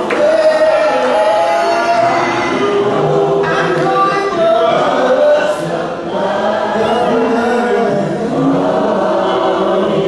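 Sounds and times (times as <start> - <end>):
group singing a cappella hymn: 0.0 - 10.0.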